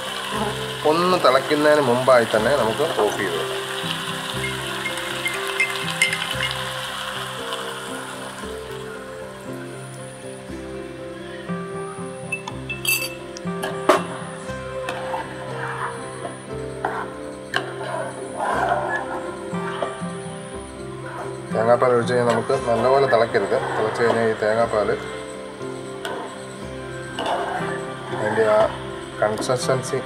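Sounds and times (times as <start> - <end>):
background music: 0.0 - 30.0
curry sizzling in a frying pan: 0.0 - 30.0
sharp clink: 12.3 - 13.2.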